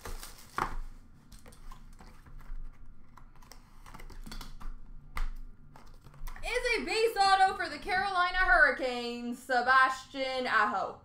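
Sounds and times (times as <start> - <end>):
hands clicking and tapping: 3.4 - 6.4.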